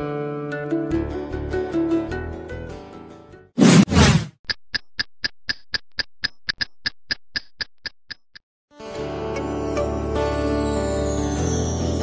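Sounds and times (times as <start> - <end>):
whoosh effect: 3.6 - 4.3
electronic ticking: 4.5 - 8.4.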